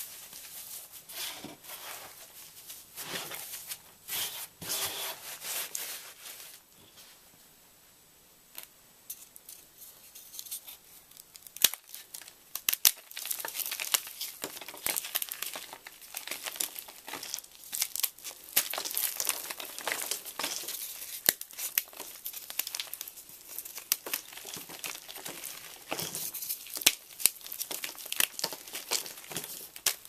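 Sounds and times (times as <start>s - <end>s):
chalk crunching and crackling: 0.0s - 6.6s, 9.5s - 30.0s.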